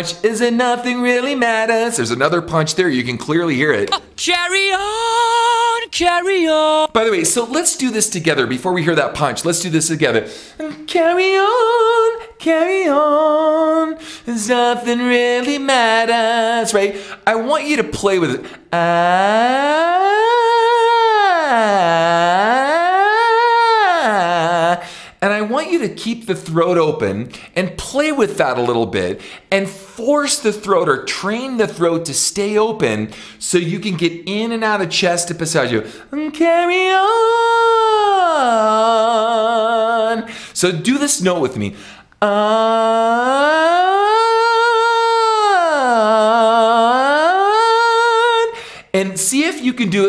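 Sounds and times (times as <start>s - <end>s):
man singing vocal siren: 3.6s - 7.1s, 10.6s - 25.6s, 36.1s - 40.3s, 42.2s - 50.0s.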